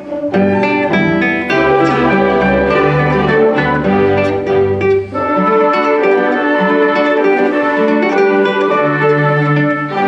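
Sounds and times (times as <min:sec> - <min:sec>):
classical guitar solo: 0:00.0 - 0:10.0
orchestra strings and winds: 0:00.0 - 0:10.0.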